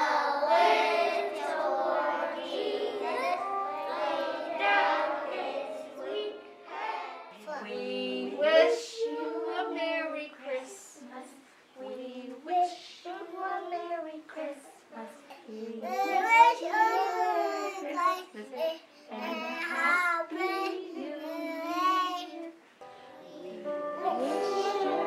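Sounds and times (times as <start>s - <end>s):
young children singing: 0.0s - 25.0s.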